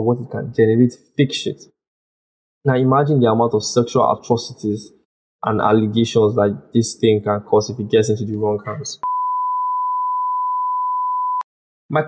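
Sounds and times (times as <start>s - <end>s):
electronic bleep tone: 9.0s - 11.5s.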